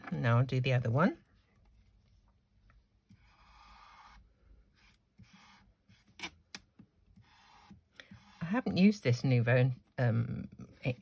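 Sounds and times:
glue pen rubbing on cardstock: 0:04.8 - 0:06.3, 0:07.2 - 0:08.7.

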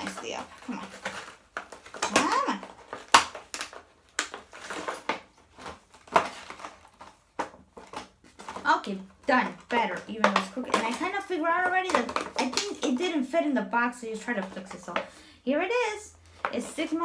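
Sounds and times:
plastic packaging crinkling: 0:00.0 - 0:13.3.

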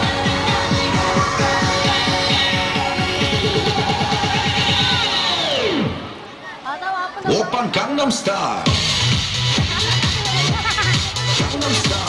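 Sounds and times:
electronic dance music: 0:00.0 - 0:06.4, 0:07.3 - 0:12.0.

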